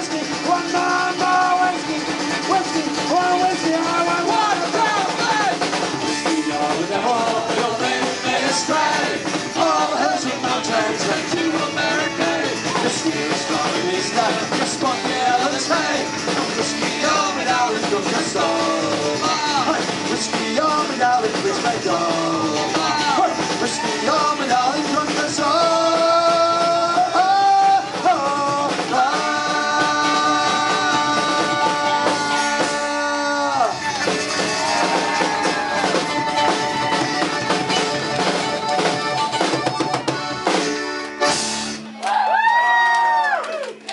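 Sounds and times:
accordion: 0:00.0 - 0:34.8, 0:35.5 - 0:41.9
person singing: 0:00.0 - 0:37.2
live punk band playing: 0:00.0 - 0:43.3.

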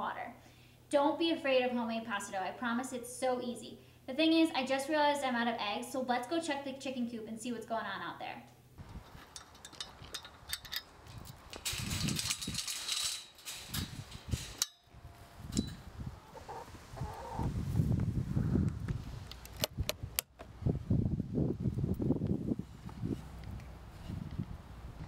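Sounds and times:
handling noise: 0:08.8 - 0:17.4
metal chain clinking on gate: 0:08.9 - 0:15.8.

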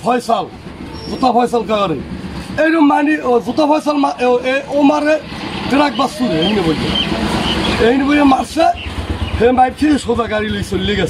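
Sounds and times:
street traffic noise: 0:00.0 - 0:11.0
vehicle passing: 0:00.5 - 0:11.0
man speaking: 0:02.6 - 0:08.8.

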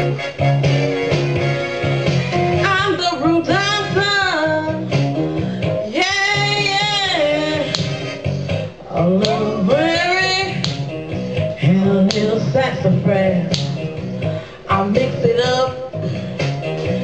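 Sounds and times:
instrumental backing: 0:00.0 - 0:17.0
woman singing blues: 0:02.5 - 0:17.0.

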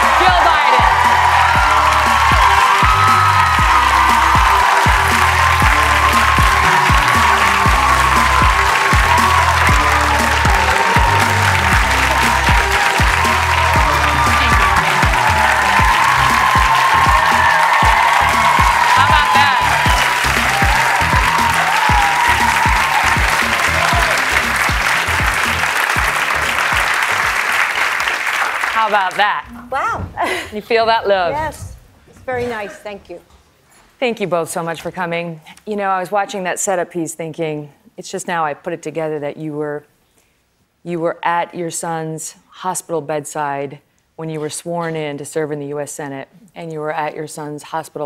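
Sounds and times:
upbeat show music with bass: 0:00.0 - 0:27.6
audience applauding and cheering: 0:00.0 - 0:29.4.

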